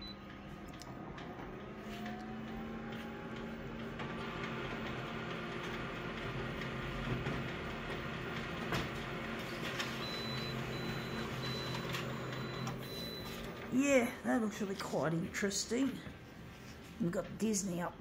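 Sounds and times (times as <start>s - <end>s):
copier mechanical hum: 0.0s - 18.0s
copier clicks and knocks: 3.3s - 13.6s.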